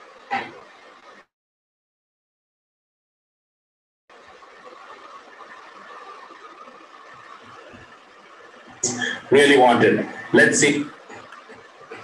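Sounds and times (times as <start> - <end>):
room noise and hiss: 0.0 - 1.3, 4.1 - 12.0.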